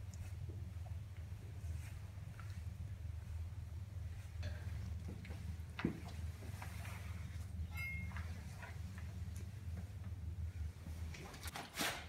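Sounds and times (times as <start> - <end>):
steady low hum: 0.0 - 11.5.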